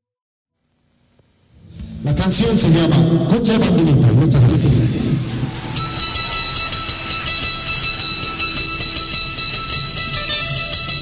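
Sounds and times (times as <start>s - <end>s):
person's voice: 1.6s - 5.3s.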